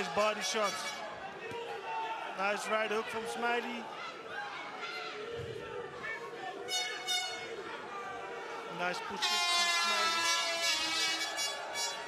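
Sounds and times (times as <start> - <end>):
air horn blast: 6.7 - 7.5, 9.2 - 12.0.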